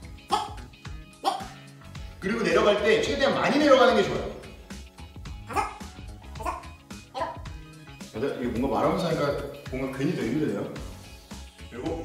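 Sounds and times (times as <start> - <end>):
background music: 0.0 - 12.0
short voice sounds: 0.3 - 0.6.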